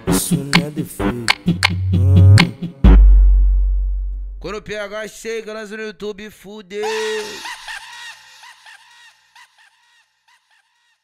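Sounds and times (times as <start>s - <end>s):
laugh with echo effect: 6.8s - 11.0s.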